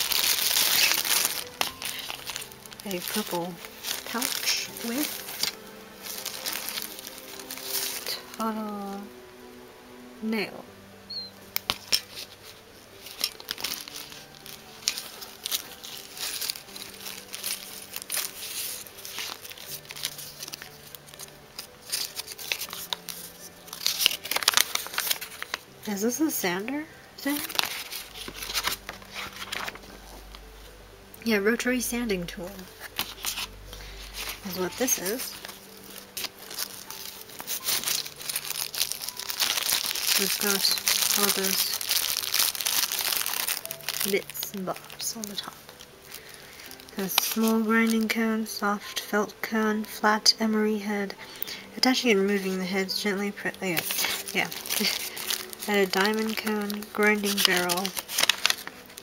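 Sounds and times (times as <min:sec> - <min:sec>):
cloth pouch rustling: 0:00.0 - 0:09.2, 0:11.2 - 0:30.7, 0:32.4 - 0:48.5, 0:51.7 - 0:59.0
packaging crinkling: 0:00.0 - 0:09.2, 0:11.2 - 0:26.4, 0:27.2 - 0:30.6, 0:32.5 - 0:50.0, 0:51.3 - 0:59.0
faint background music: 0:00.0 - 0:59.0.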